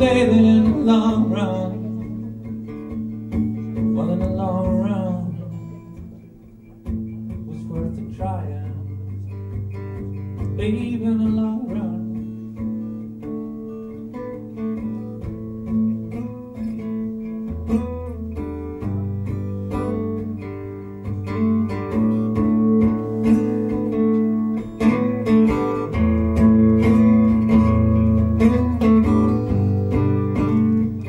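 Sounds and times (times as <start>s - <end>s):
live band with acoustic guitar: 0.0s - 31.0s.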